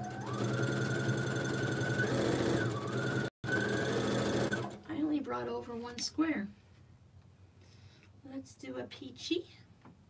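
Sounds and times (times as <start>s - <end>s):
sewing machine motor whine: 0.0s - 4.8s.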